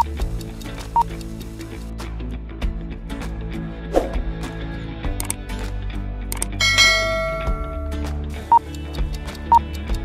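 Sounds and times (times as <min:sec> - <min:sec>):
cursor click: 0:06.3 - 0:06.6
notification bell ringing: 0:06.6 - 0:08.0.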